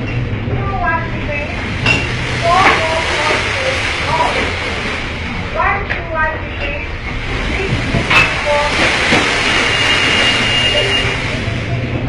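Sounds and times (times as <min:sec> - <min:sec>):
wind buffeting microphone: 0:00.0 - 0:09.9
storm wind and sea rushing: 0:00.0 - 0:12.0
thin high whistle: 0:09.6 - 0:11.2.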